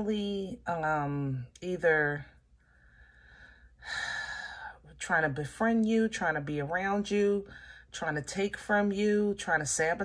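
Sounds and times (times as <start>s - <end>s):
person breathing in: 2.6s - 4.8s.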